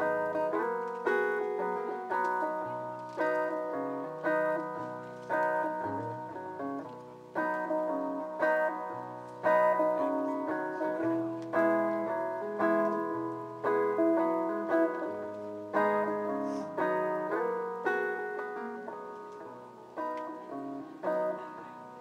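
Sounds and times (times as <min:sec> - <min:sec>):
acoustic guitar chords through a pa: 0:00.0 - 0:22.0.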